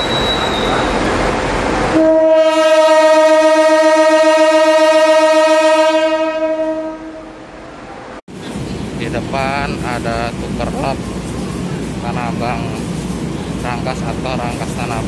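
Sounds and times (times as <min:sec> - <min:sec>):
locomotive horn blast: 0:01.9 - 0:07.4.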